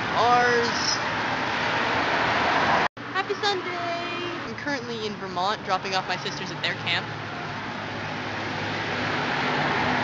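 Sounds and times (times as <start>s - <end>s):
road traffic rushing: 0.0s - 10.0s.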